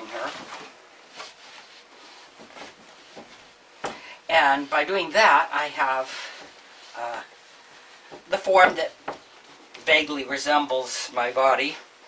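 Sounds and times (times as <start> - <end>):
blanket rustling: 0.0 - 3.8.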